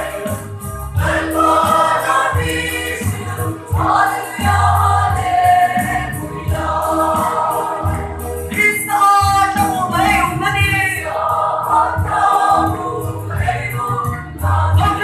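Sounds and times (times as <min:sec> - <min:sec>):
choir singing a hymn: 0:00.0 - 0:08.8, 0:09.9 - 0:15.0.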